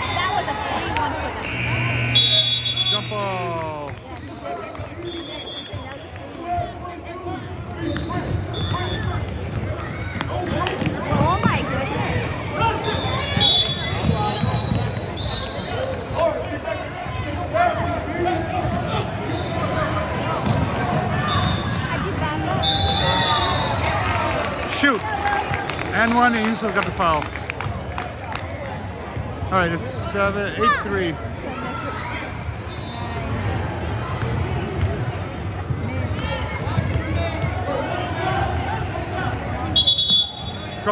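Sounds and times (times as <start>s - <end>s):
many voices chattering: 0.0s - 40.9s
short high-pitched tones: 1.4s - 3.6s.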